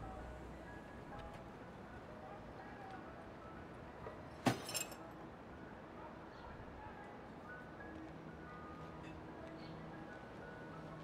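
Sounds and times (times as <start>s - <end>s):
quiet street background: 0.0s - 11.0s.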